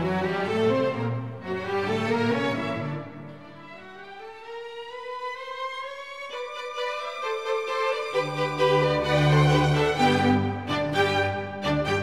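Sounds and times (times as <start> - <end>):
orchestral strings music: 0.0 - 12.0.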